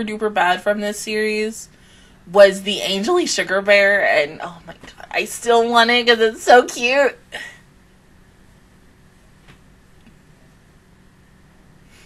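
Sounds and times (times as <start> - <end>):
woman speaking: 0.0 - 1.7, 2.3 - 7.5
faint steady hum: 0.0 - 12.0
breathy exhale: 1.7 - 2.2.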